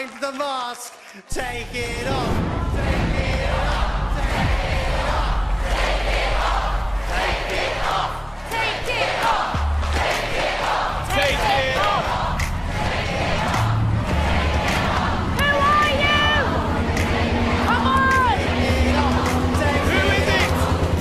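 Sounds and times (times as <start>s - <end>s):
audience shouting and cheering: 0.0s - 21.0s
tense build-up music: 1.4s - 21.0s
excited high voices: 15.2s - 20.6s.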